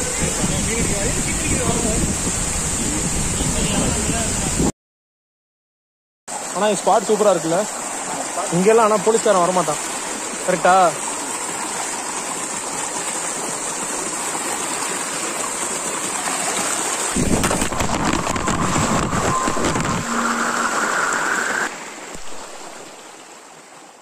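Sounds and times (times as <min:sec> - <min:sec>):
stream rushing over rocks: 0:06.3 - 0:24.0.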